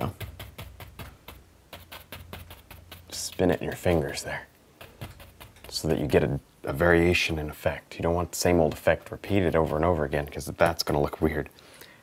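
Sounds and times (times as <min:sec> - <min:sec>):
paint brush tapping on canvas: 0:00.0 - 0:04.2, 0:04.8 - 0:06.2.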